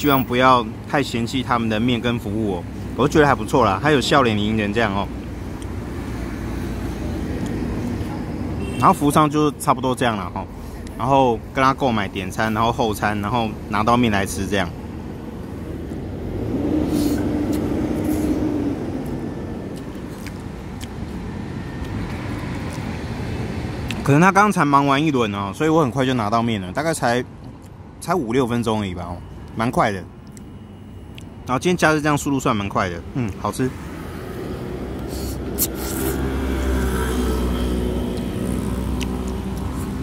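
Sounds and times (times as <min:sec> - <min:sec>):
road traffic: 0:00.0 - 0:40.0.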